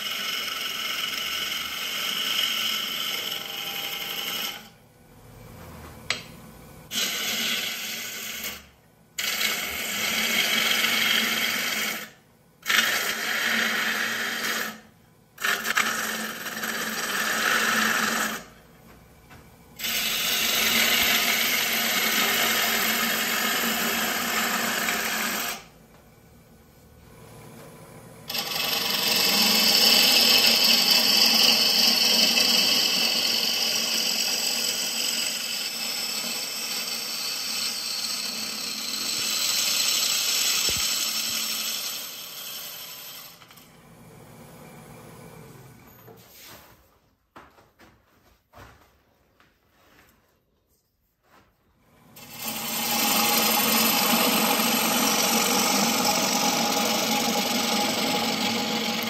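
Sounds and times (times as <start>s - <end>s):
gouge scraping wood on lathe: 0.0s - 4.7s, 6.9s - 18.6s, 19.8s - 25.7s, 28.3s - 43.7s, 52.2s - 59.0s.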